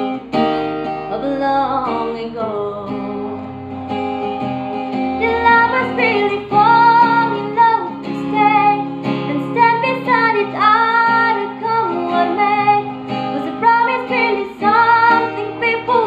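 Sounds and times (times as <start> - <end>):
acoustic guitar strumming: 0.0 - 16.0
woman singing: 0.4 - 3.8, 5.2 - 16.0.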